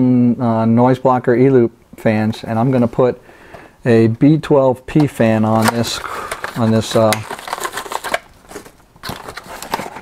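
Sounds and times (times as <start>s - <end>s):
cardboard and paper rustling: 5.5s - 10.0s.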